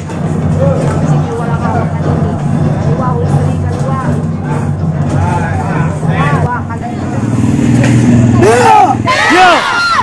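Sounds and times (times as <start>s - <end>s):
low engine hum: 0.0s - 9.7s
raised voices: 4.3s - 10.0s.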